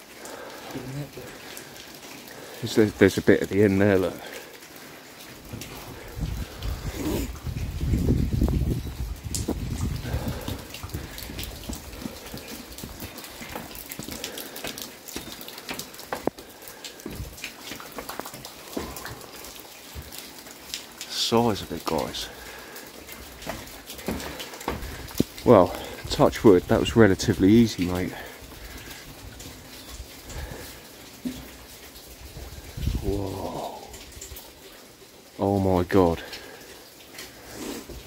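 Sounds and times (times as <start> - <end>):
wind rumbling on microphone: 5.9 - 12.2, 32.2 - 33.3
footsteps on steel stairs: 23.4 - 25.0.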